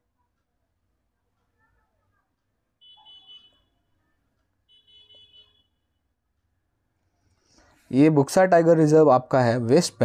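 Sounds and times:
faint high-pitched beep: 0:02.8 - 0:04.0, 0:04.6 - 0:06.0.

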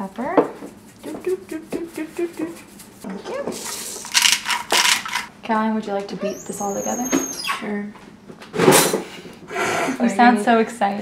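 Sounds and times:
salt shaker ticking: 0:03.6 - 0:05.3.

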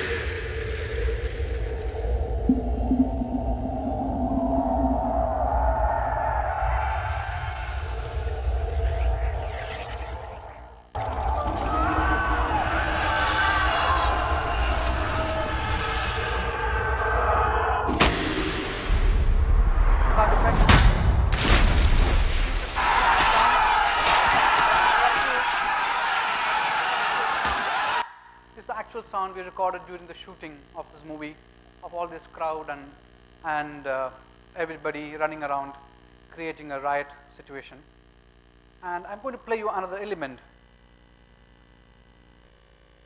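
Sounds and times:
layered drone: 0:00.0 - 0:11.2.

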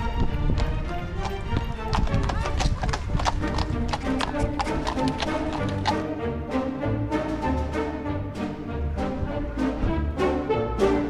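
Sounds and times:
hooves clip-clopping on pavement: 0:00.0 - 0:06.5
music: 0:00.0 - 0:11.0.

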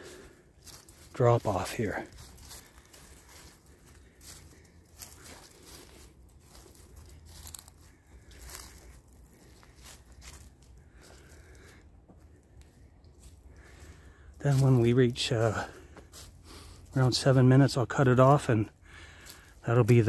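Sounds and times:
footsteps through dry leaves: 0:00.0 - 0:20.0.

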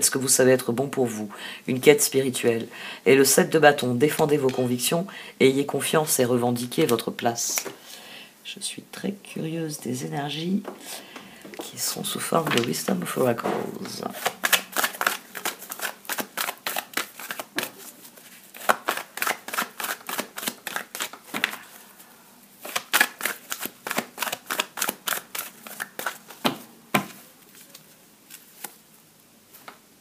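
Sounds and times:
cards being shuffled: 0:12.3 - 0:21.8, 0:22.6 - 0:28.9.

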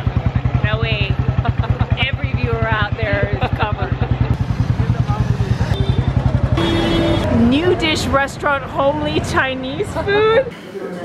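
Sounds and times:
motorcycle engine running: 0:00.0 - 0:09.5.

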